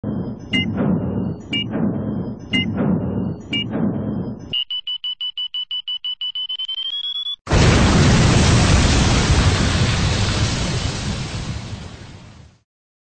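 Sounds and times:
rapid electronic beeping: 0.0 - 7.5
explosion blast: 7.5 - 12.6.

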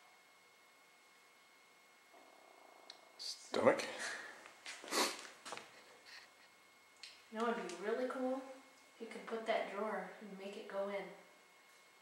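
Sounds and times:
equipment hiss with faint tones: 0.0 - 12.0.

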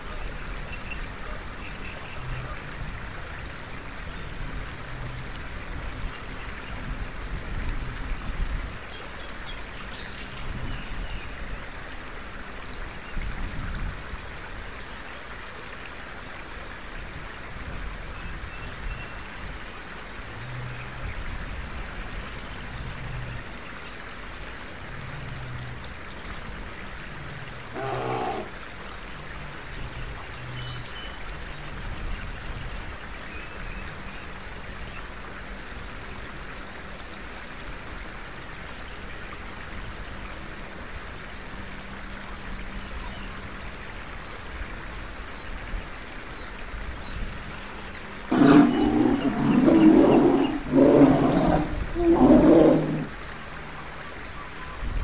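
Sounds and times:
steady hiss: 0.0 - 55.0
bear-like growls and grunts: 27.7 - 28.5, 48.3 - 53.1.

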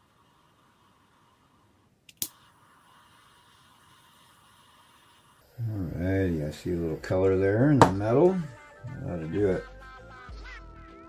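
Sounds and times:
torch flame hissing: 0.0 - 8.3
lighter igniter click: 2.1 - 2.8
man's voice: 5.6 - 9.8.

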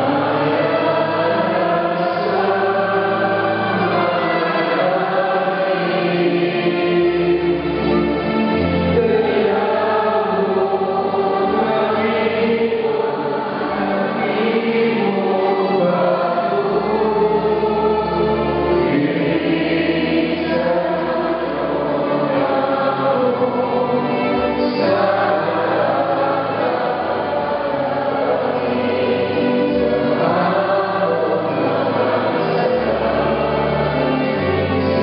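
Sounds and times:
congregation singing a hymn: 0.0 - 35.0.

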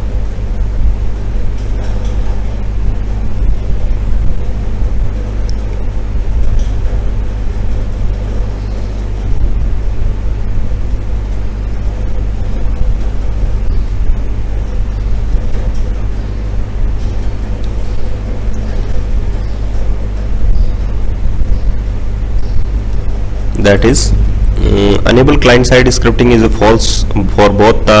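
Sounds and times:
low hum and rumble: 0.0 - 28.0.

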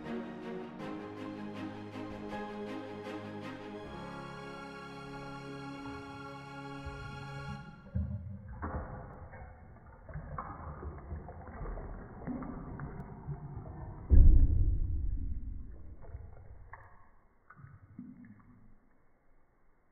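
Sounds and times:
low water rush: 0.0 - 16.8
bathtub water gurgling and sloshing: 7.8 - 16.9.

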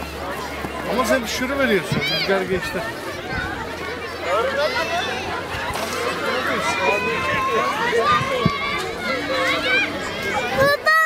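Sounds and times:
children shouting: 0.0 - 11.0.

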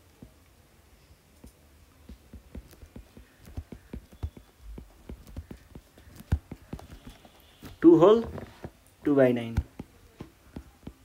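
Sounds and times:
stylus tapping on glass screen: 2.1 - 7.2.

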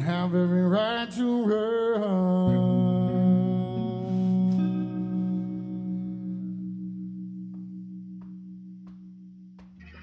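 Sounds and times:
electric guitar and bass chord: 2.6 - 10.0.

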